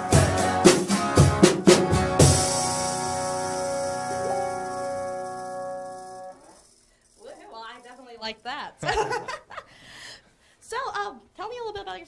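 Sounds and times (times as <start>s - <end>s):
guitar chord ringing: 1.8s - 6.5s.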